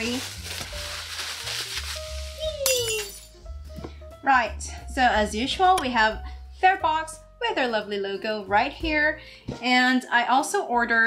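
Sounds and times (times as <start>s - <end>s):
plastic wrapping crinkling: 0.0s - 3.0s
sharp plastic crackle: 0.0s - 3.0s.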